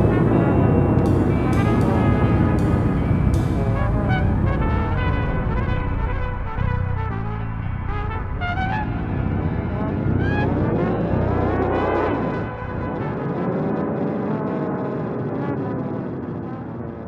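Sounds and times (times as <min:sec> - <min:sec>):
small band playing: 0:00.0 - 0:10.0
trumpet: 0:00.0 - 0:16.1.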